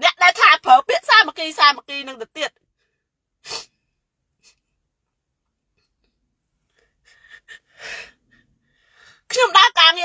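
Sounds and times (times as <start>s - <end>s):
woman breathing sharply: 6.8s - 9.3s.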